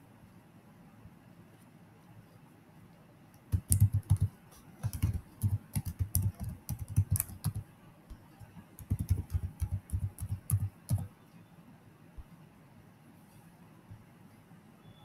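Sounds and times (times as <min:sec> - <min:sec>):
computer keyboard typing: 0:03.5 - 0:11.1.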